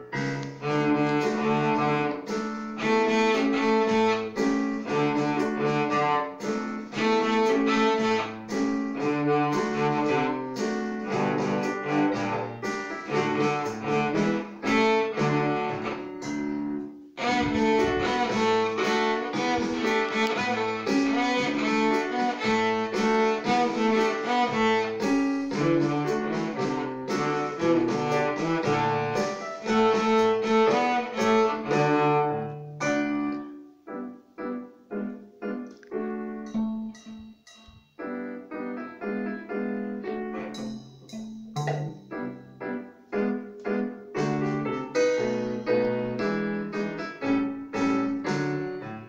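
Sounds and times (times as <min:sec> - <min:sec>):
cello playing a rag tune: 0:00.0 - 0:33.4, 0:40.2 - 0:42.7.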